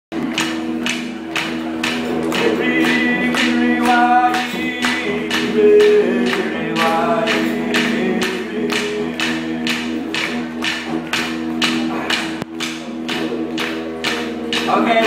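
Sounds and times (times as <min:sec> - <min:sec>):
clapsticks beat: 0:00.1 - 0:15.0
didgeridoo drone: 0:00.2 - 0:15.0
person singing: 0:00.9 - 0:11.0.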